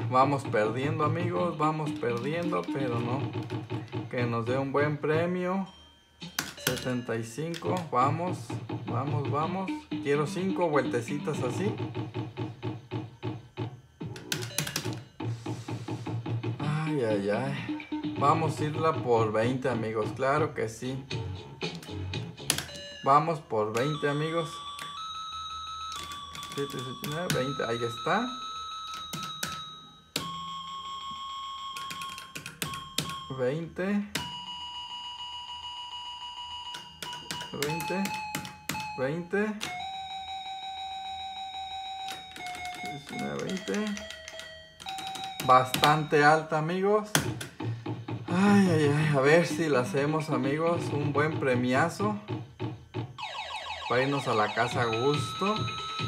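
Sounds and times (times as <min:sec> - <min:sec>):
slot machine short beeps: 0:00.7 - 0:03.5, 0:04.4 - 0:08.2, 0:14.2 - 0:15.2, 0:22.6 - 0:33.4, 0:36.5 - 0:46.7, 0:53.9 - 0:56.0.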